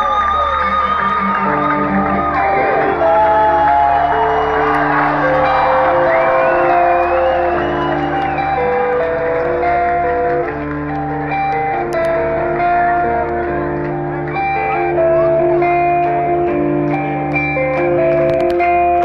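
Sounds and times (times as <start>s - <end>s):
crowd whooping: 0.0s - 16.3s
live metal band playing: 1.2s - 19.0s.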